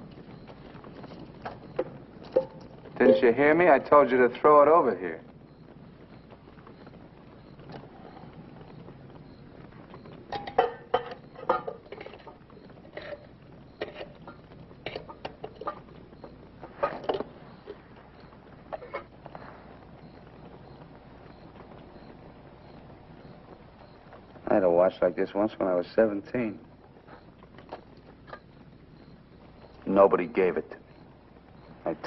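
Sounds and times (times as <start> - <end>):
old film soundtrack hiss: 0.0 - 32.0.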